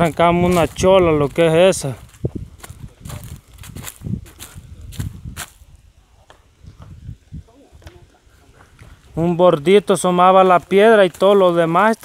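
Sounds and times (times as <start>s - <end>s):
footsteps over dry leaves: 0.0s - 12.0s.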